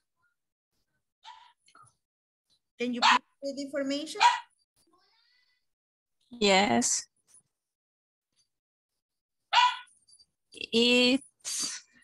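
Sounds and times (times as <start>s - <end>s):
bark-like animal call: 4.2s - 4.5s, 9.5s - 9.9s.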